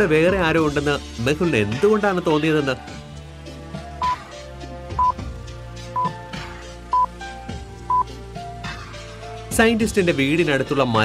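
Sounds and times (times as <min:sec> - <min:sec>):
soft background music: 0:00.0 - 0:11.0
high timer beep: 0:05.0 - 0:05.2, 0:06.0 - 0:06.2.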